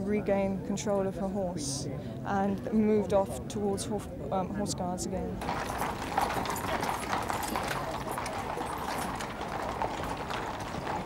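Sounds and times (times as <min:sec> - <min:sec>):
horse hooves clip-clopping: 0:05.4 - 0:11.0.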